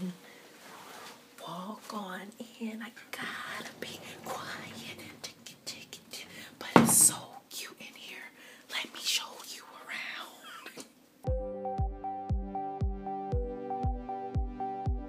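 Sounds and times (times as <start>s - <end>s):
woman whispering: 1.4s - 10.9s.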